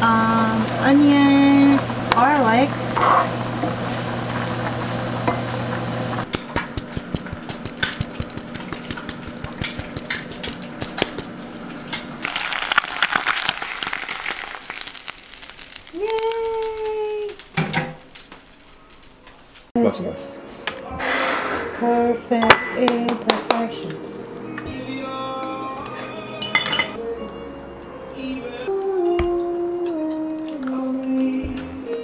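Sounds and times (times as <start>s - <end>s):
food sizzling in a frying pan: 0.0s - 6.3s, 10.0s - 19.7s
wooden spatula scraping and tapping: 6.3s - 12.0s.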